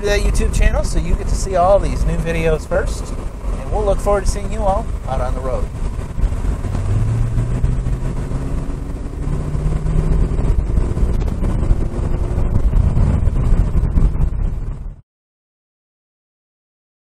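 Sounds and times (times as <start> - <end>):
car engine running: 0.0 - 15.0
road noise: 0.0 - 15.0.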